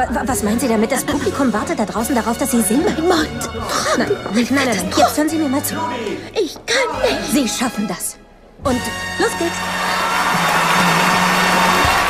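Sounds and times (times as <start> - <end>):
orchestral music: 0.0 - 12.0
audience applause and cheering: 9.5 - 12.0.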